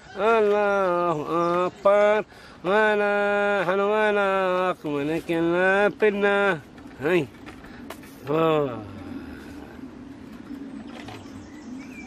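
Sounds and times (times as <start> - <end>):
steady low hum: 2.2 - 12.0
faint bird chirps: 8.7 - 12.0.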